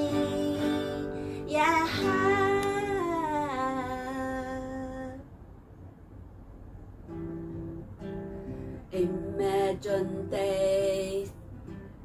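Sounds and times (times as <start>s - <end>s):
woman singing held vowel: 0.0s - 5.2s, 8.9s - 11.4s.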